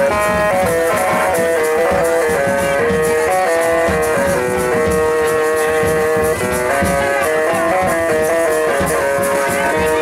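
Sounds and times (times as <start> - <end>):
music with held notes and beat: 0.0 - 10.0.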